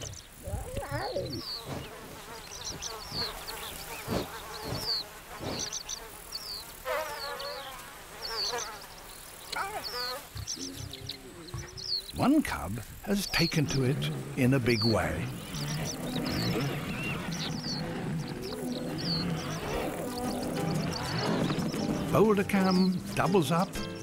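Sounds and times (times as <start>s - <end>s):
insects chirping: 0.0s - 24.0s
lion cubs calling: 9.5s - 22.2s.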